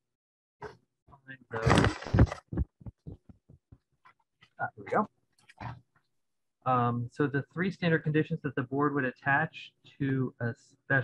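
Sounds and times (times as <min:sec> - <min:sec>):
microphone handling bump and rustle: 0:01.6 - 0:03.8.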